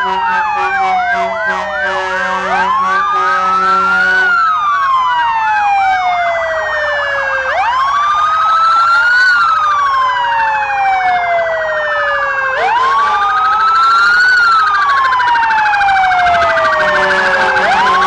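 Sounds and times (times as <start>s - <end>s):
wailing siren: 0.0s - 18.0s
rapidly pulsing siren tone: 0.3s - 18.0s.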